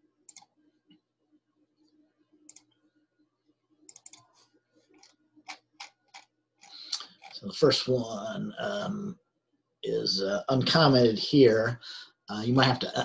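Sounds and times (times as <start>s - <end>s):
faint low hum: 0.0s - 13.0s
computer mouse clicks: 0.3s - 1.0s, 1.8s - 2.8s, 3.8s - 7.4s.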